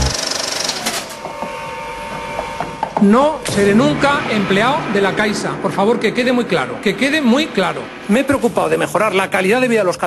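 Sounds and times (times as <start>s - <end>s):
noisy rush: 1.5s - 10.0s.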